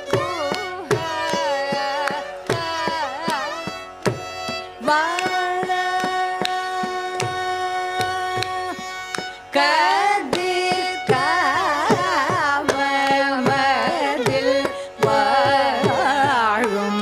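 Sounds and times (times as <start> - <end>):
mridangam drum rhythm: 0.0 - 17.0
person singing: 4.8 - 17.0.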